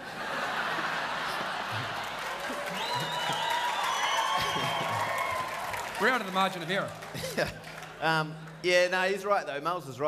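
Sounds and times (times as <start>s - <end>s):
audience laughing: 0.0s - 5.2s, 7.0s - 7.8s
audience applauding: 0.7s - 8.9s.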